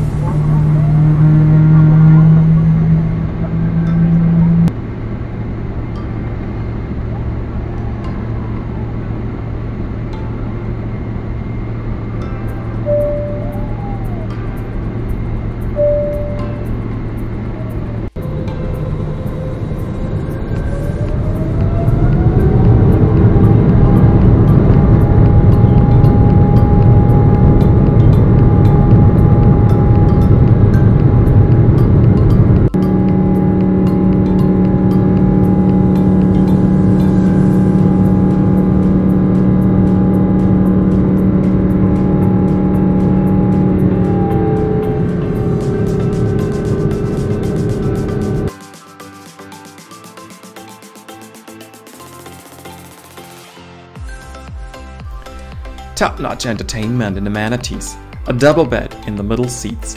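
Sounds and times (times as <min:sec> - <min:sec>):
jet engines spooling up: 0:00.0 - 0:53.5
music with steady beat: 0:10.1 - 0:19.4, 0:20.0 - 0:59.9.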